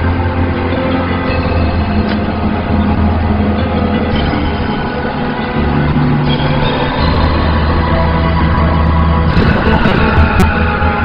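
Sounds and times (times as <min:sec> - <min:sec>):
dramatic orchestral score: 0:00.0 - 0:11.0
sustained low bass notes: 0:00.0 - 0:11.0.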